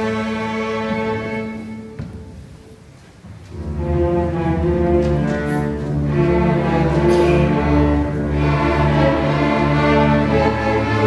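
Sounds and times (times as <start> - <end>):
string orchestra playing: 0.0 - 11.0.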